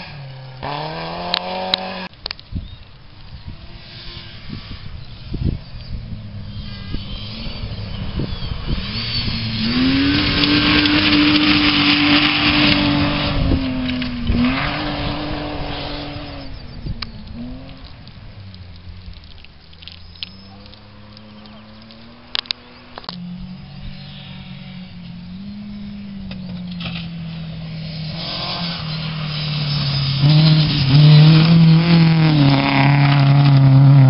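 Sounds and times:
rally car engine at high revs: 0.0 - 2.1, 6.5 - 18.0, 20.9 - 34.0
gravel spraying from tyres: 26.2 - 34.0.

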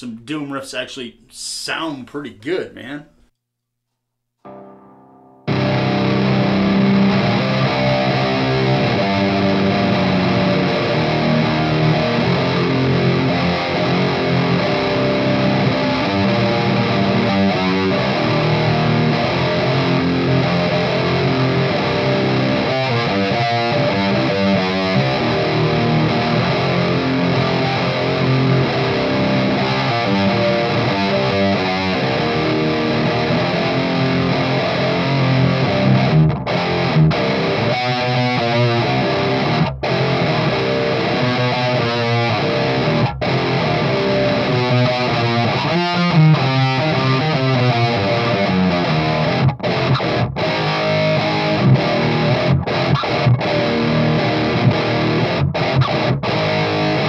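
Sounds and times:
distorted electric guitar riffs: 4.4 - 57.0.

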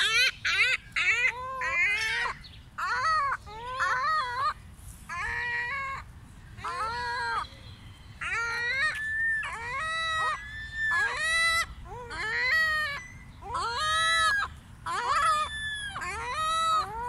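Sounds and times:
gulls wailing calls: 0.0 - 17.0.

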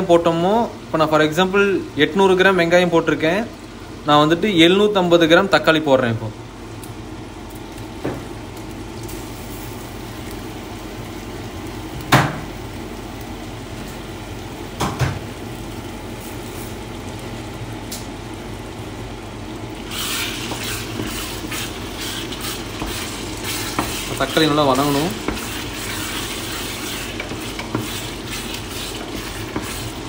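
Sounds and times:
tomatoes sizzling in hot oil: 0.0 - 30.0
spoon stirring and scraping: 19.9 - 30.0.

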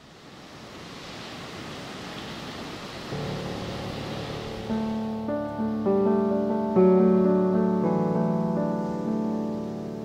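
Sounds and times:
ocean surf breaking: 0.0 - 10.0
soft piano music: 3.1 - 10.0.

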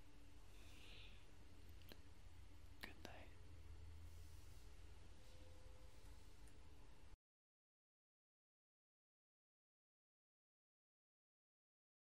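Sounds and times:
low steady hum: 0.0 - 7.2.

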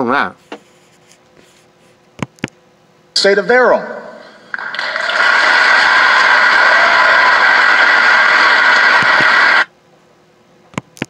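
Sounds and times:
large audience applauding: 4.5 - 9.7.

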